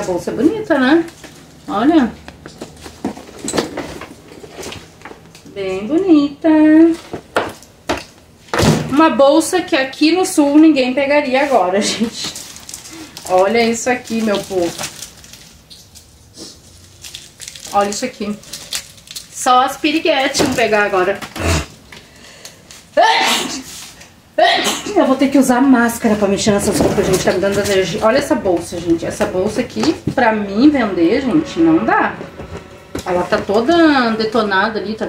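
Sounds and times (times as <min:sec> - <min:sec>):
woman sneezing: 0:23.0 - 0:23.7, 0:24.4 - 0:25.1.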